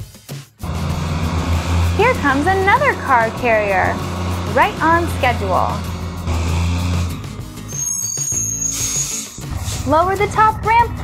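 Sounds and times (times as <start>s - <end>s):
background music: 0.0s - 11.0s
cartoon truck engine hum: 0.6s - 9.0s
higher tones: 0.6s - 9.0s.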